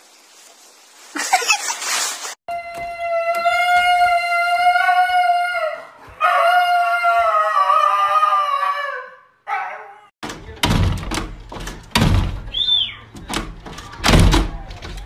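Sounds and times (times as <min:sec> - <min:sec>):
dog howling: 0:02.5 - 0:10.1
dog thudding against glass door: 0:10.2 - 0:15.0.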